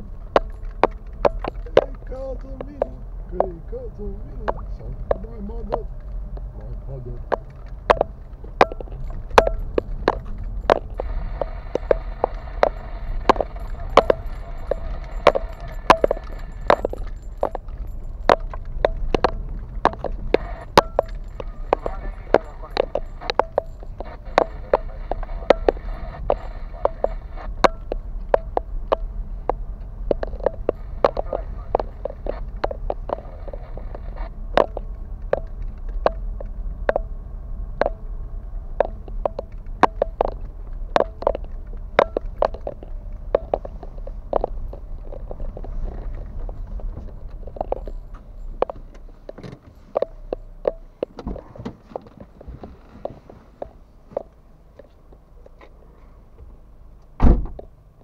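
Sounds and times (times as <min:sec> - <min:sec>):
car suspension knocking and rattling: 0:00.0 - 0:55.7, 0:56.3 - 0:58.0
low road rumble: 0:00.0 - 0:58.0.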